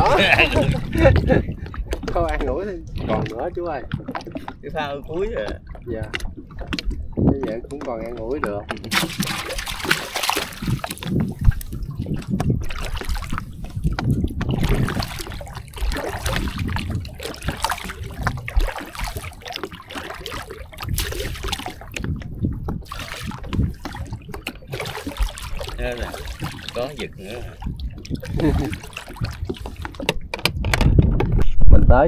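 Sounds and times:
water trickling and splashing off net: 8.9 - 22.2, 22.8 - 30.1.

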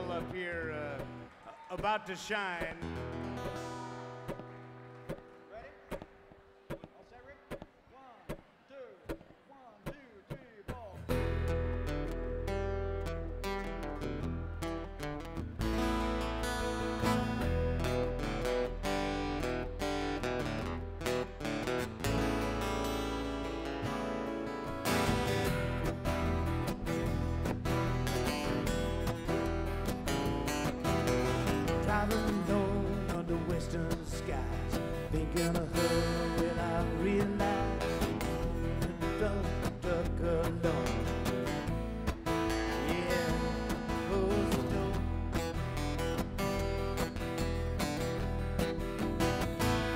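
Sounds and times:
acoustic country band playing: 0.0 - 6.9, 10.7 - 49.9.

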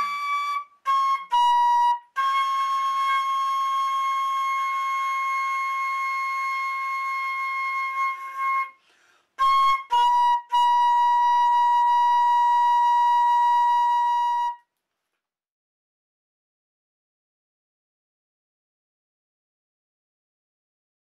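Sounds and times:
flute holding notes: 0.0 - 14.7.

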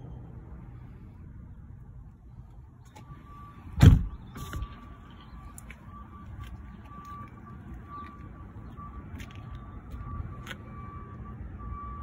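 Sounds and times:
car door slamming: 3.8 - 4.6.

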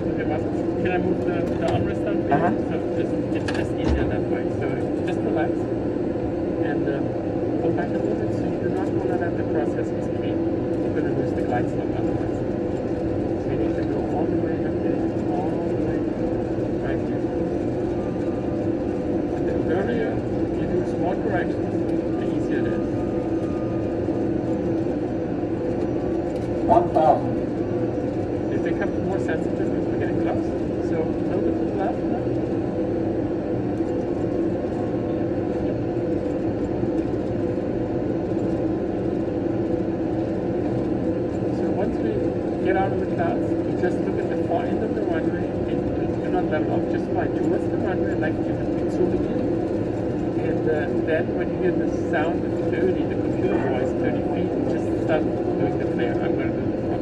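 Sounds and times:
engine and airflow hum: 0.0 - 57.0.

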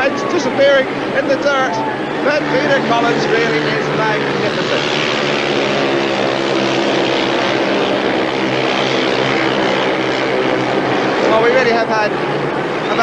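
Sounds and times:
motorcycle engines racing: 0.0 - 13.0.

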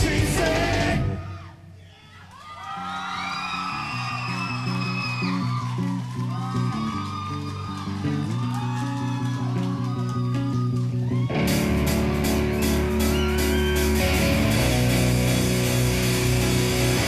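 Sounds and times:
audience whooping: 0.8 - 17.0
electric guitar riff: 9.9 - 17.0.

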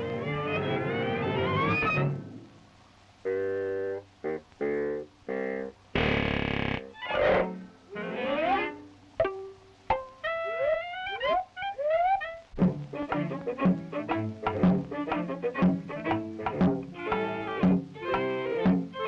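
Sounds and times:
cartoon music score: 0.0 - 2.4, 7.0 - 19.0
sliding notes rising and falling: 0.0 - 2.5, 6.0 - 8.9, 9.9 - 19.0
sharp plucks: 9.2 - 19.0
short stabbed notes: 12.6 - 17.9.

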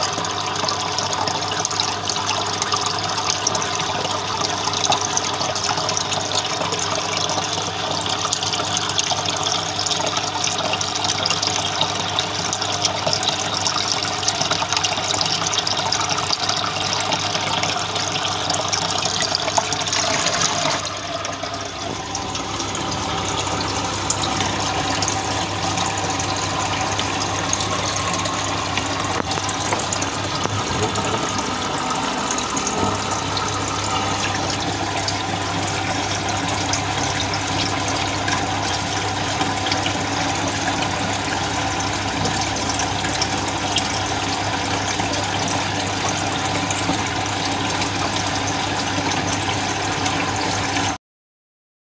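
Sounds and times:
water splashing and bubbling: 0.0 - 51.0
low motor hum: 10.2 - 50.9.

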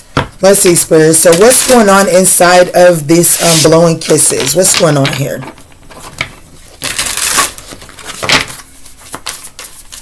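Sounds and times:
cards being shuffled: 5.9 - 10.0.

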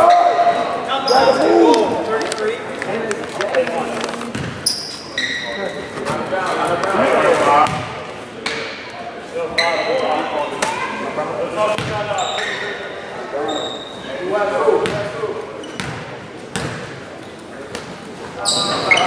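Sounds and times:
people's voices: 0.0 - 19.0
sneaker squeaks: 0.9 - 1.5, 4.2 - 6.3, 9.5 - 10.7, 11.7 - 14.1, 14.8 - 16.8, 17.7 - 19.0
basketball bouncing on hardwood floor: 4.3 - 4.6.

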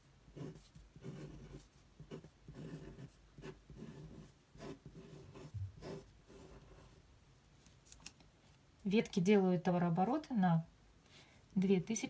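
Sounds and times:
pen scratching on paper: 0.3 - 7.0
soft low thump: 5.5 - 5.9.

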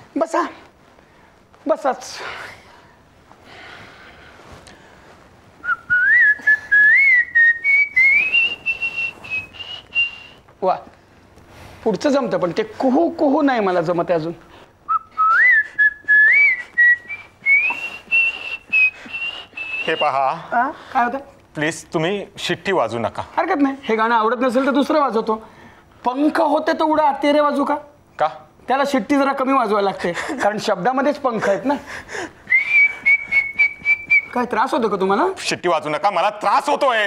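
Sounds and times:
person whistling: 5.6 - 10.4, 14.9 - 20.2, 32.5 - 34.5.

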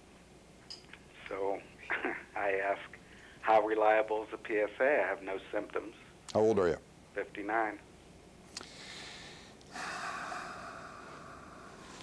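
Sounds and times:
man breathing out: 8.6 - 12.0.

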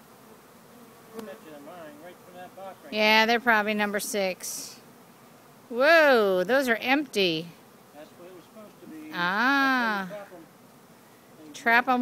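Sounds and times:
honeybee swarm buzzing: 0.0 - 12.0.

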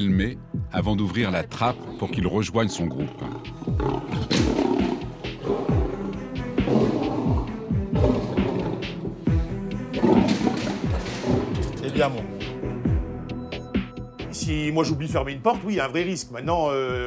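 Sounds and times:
background music: 0.0 - 17.0
lion calling: 1.4 - 12.5.

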